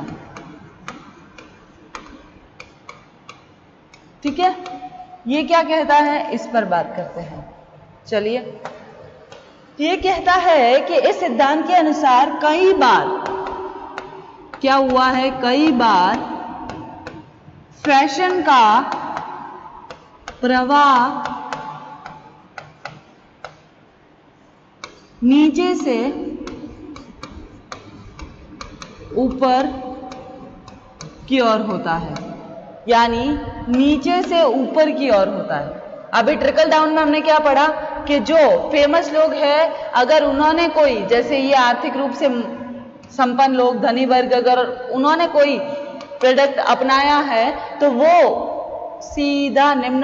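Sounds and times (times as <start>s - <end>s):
pen tapping on whiteboard: 0.0s - 4.9s, 8.6s - 9.6s, 13.2s - 20.4s, 21.0s - 23.8s, 24.8s - 32.4s.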